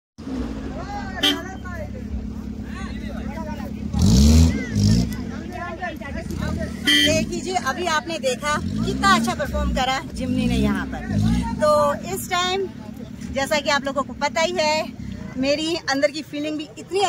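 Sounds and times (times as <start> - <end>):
car engine humming: 0.2 - 17.0
people's voices: 0.6 - 17.0.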